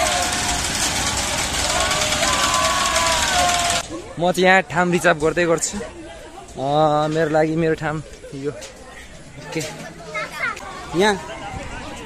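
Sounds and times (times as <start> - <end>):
riders shouting: 0.0 - 4.0
ride rushing noise: 0.0 - 4.1.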